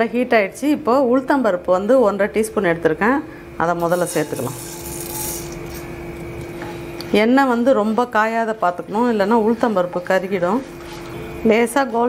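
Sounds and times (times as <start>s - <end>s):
grains poured into a pan: 3.8s - 5.8s
oil sizzling: 3.8s - 6.6s.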